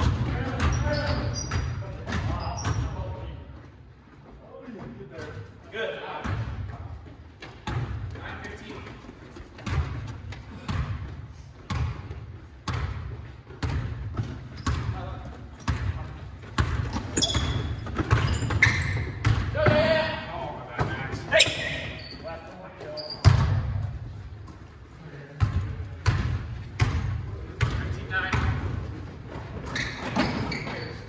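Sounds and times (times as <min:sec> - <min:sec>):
sneaker squeaks: 0:00.3 - 0:03.2, 0:13.6 - 0:19.4, 0:20.8 - 0:24.6, 0:29.3 - 0:31.0
basketball bouncing on wooden floor: 0:09.6 - 0:15.0, 0:15.6 - 0:19.8, 0:25.4 - 0:30.8.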